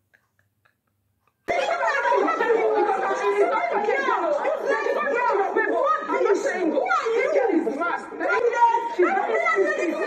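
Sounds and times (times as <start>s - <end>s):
people arguing over one another: 1.5s - 10.0s.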